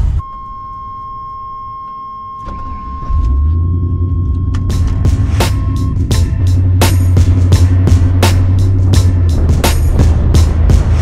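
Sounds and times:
steady electronic tone: 0:00.2 - 0:11.0
pickup engine rumbling: 0:02.5 - 0:11.0
music with drum beat: 0:04.7 - 0:11.0.

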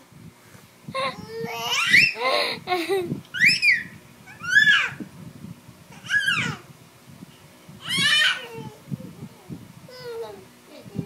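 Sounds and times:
baby squealing: 0:01.5 - 0:02.2.

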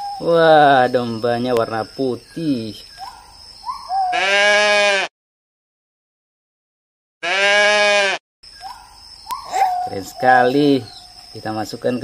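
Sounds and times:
sheep bleating: 0:04.1 - 0:05.1, 0:07.2 - 0:08.2.

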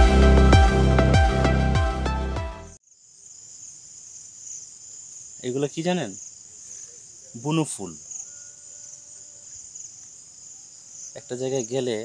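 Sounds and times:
insects chirping: 0:02.7 - 0:12.0.

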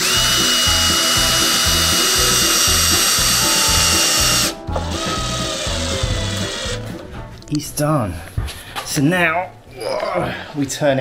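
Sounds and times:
cordless drill whining: 0:00.0 - 0:07.0.

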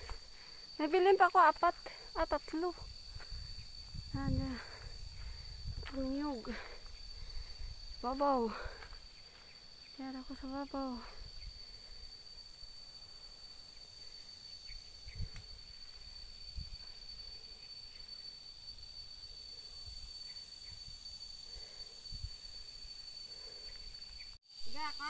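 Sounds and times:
insects droning: 0:00.0 - 0:25.0.

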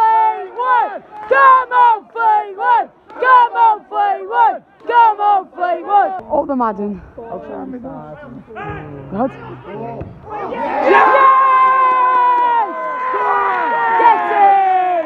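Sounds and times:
crowd shouting: 0:00.0 - 0:06.2, 0:08.2 - 0:15.0
football crowd cheering: 0:00.0 - 0:06.2, 0:08.6 - 0:15.0.

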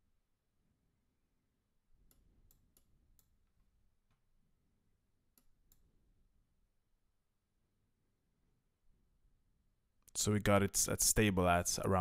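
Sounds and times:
soft sharp clicks: 0:02.0 - 0:03.5, 0:05.3 - 0:05.9.

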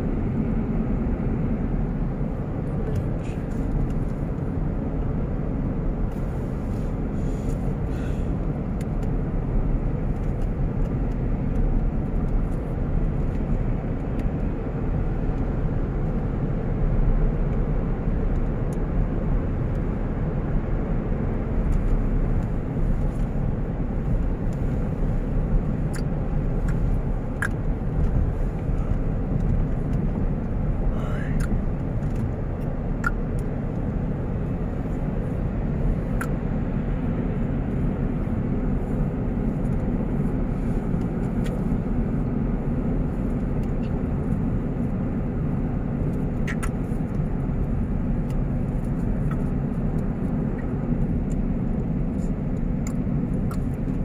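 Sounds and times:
car road noise at highway speed: 0:00.0 - 0:54.0
rumble of tyres and engine: 0:00.0 - 0:54.0.

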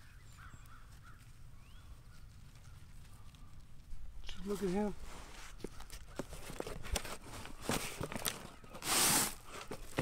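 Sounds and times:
mulch and cardboard rustling: 0:04.4 - 0:10.0.

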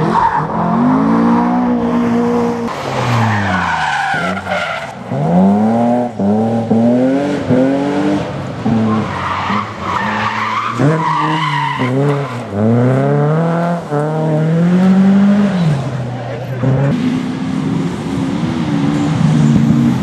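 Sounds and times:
rally car engine accelerating: 0:00.0 - 0:20.0.

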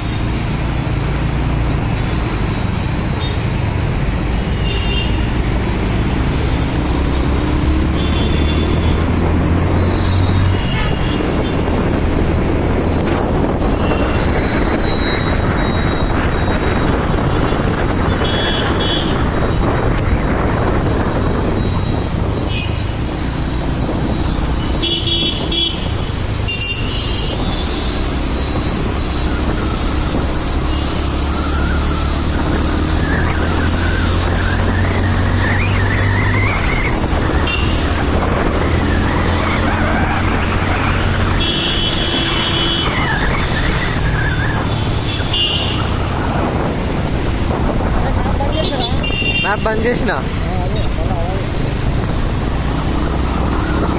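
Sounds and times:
motorcycle engine humming: 0:00.0 - 0:49.6, 0:50.3 - 0:53.9
wind and road noise: 0:00.0 - 0:53.9
vehicle horns tooting: 0:07.9 - 0:09.0, 0:09.9 - 0:11.6, 0:17.2 - 0:19.3, 0:24.6 - 0:28.1, 0:41.2 - 0:43.4, 0:44.8 - 0:46.0, 0:48.5 - 0:50.1.

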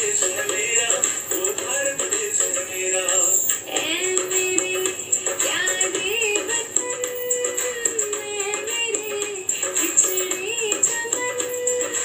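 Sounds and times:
person singing over instruments: 0:00.0 - 0:12.0.

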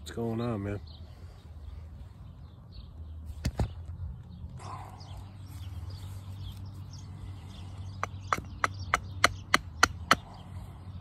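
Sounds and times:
hatchet chopping wood: 0:08.0 - 0:10.3.

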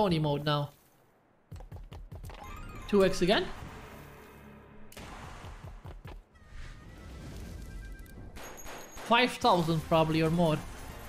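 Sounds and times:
slot game background music: 0:02.4 - 0:05.1, 0:06.7 - 0:11.0.

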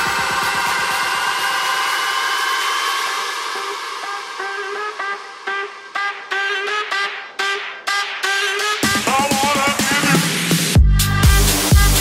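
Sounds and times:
kick-drum beat: 0:06.7 - 0:12.0.

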